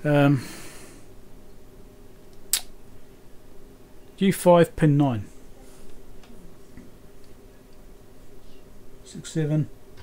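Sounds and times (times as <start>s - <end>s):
faint equipment hum: 0.0s - 10.0s.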